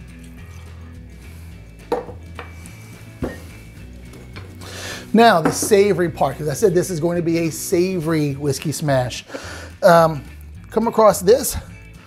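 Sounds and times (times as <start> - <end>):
soft background music: 0.0 - 12.0
objects knocking on wooden bar: 1.9 - 2.5, 5.4 - 5.9.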